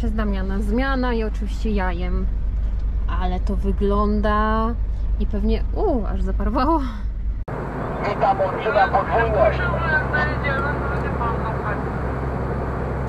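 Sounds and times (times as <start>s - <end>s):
lorry engine and tyres drone: 7.5s - 13.0s.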